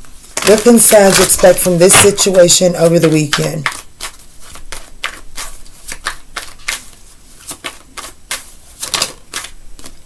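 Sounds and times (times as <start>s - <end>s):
cards being shuffled: 0.3s - 10.0s.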